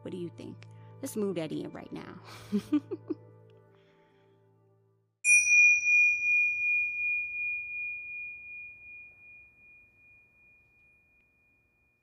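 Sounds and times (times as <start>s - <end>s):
meditation bell ringing: 5.2s - 12.0s.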